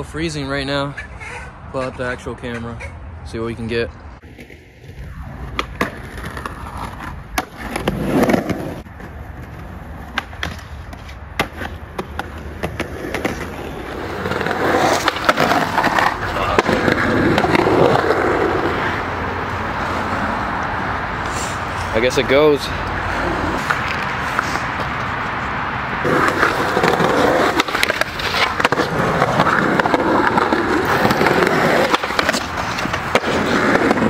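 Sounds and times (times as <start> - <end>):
skateboard wheels rolling on concrete: 0.0 - 34.0.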